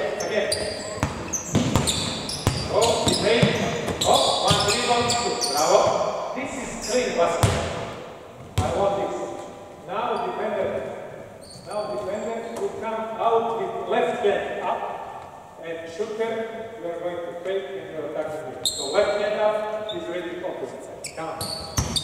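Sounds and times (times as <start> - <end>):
echoing voices: 0.0 - 22.0
basketball bouncing on wooden floor: 0.6 - 5.3, 7.4 - 8.8, 21.5 - 22.0.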